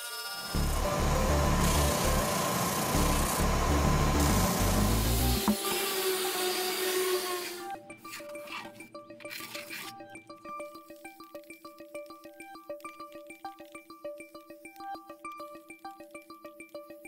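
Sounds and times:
spindle sander running: 0:00.0 - 0:07.6
background music: 0:00.2 - 0:17.0.

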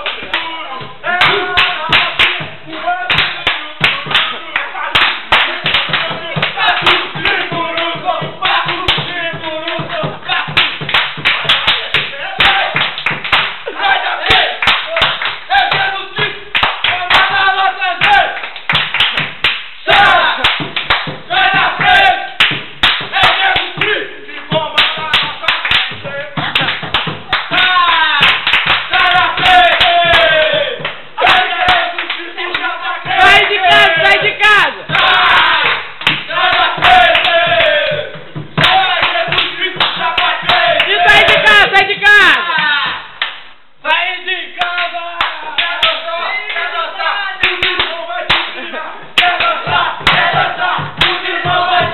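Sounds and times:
hand claps and slaps: 0:00.0 - 0:00.5, 0:01.1 - 0:43.6, 0:44.6 - 0:46.8, 0:47.4 - 0:51.9
men chanting and shouting: 0:00.0 - 0:51.9.

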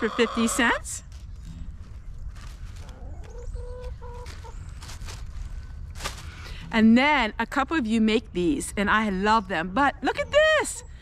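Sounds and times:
hens clucking: 0:00.0 - 0:01.0, 0:02.7 - 0:05.0
low steady rumble: 0:00.0 - 0:11.0
faint rustling: 0:00.6 - 0:06.8.

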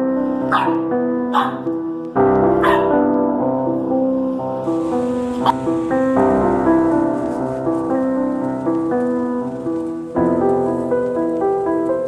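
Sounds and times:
background music: 0:00.0 - 0:12.0
puppy yipping: 0:00.5 - 0:01.7, 0:02.6 - 0:02.9.

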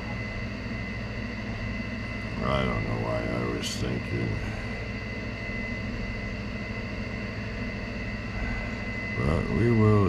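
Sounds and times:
high thin whine: 0:00.0 - 0:10.0
machine hum: 0:00.0 - 0:10.0.

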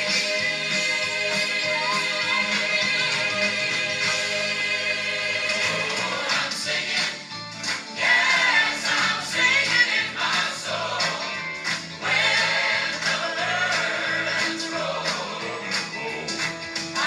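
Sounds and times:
gospel choir and audience singing: 0:00.0 - 0:17.0.

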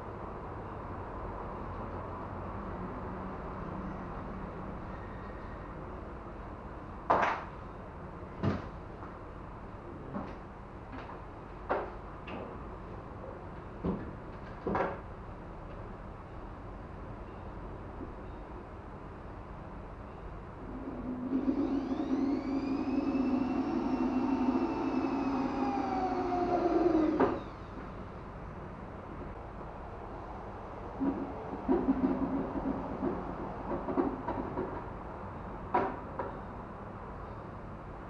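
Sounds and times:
power drill whining: 0:20.7 - 0:27.8.

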